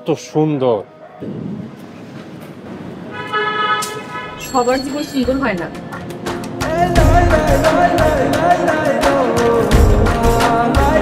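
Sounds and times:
street noise: 0.0s - 9.6s
vehicle horn: 3.1s - 5.1s.

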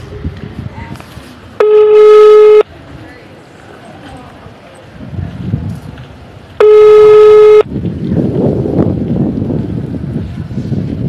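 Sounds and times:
phone call tone beep: 1.6s - 2.7s, 6.6s - 7.7s.

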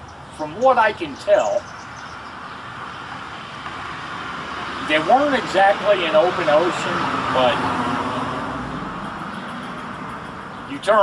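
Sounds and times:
road vehicle passing: 0.1s - 11.0s.

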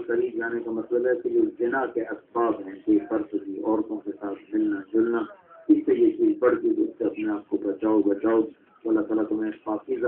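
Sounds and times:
man preaching: 0.0s - 10.0s.

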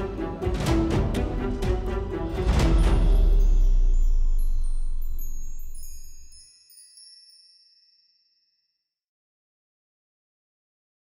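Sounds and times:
bell-like chime tones: 2.7s - 8.8s.

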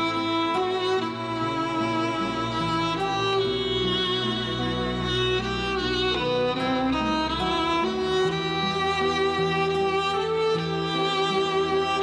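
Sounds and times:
sustained low string notes: 0.0s - 12.0s
violin melody: 0.0s - 12.0s.

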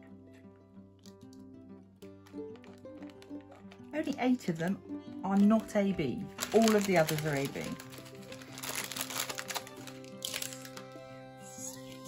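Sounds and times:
background music with held notes: 0.0s - 12.0s
plastic bags crinkling: 2.0s - 11.0s.

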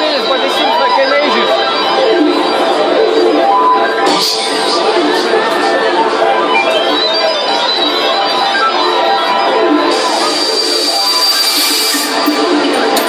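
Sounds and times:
loud dance music: 0.0s - 13.0s.

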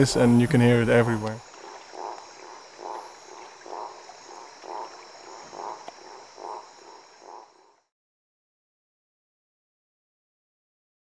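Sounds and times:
tree frog calling: 0.0s - 7.9s.

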